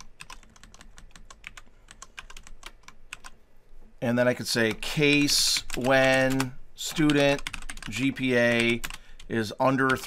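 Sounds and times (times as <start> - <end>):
computer keyboard typing: 0.0 - 3.4, 4.6 - 10.0.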